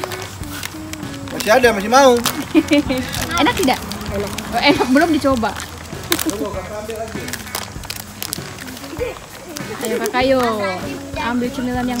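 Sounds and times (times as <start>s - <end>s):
children chattering: 0.0s - 12.0s.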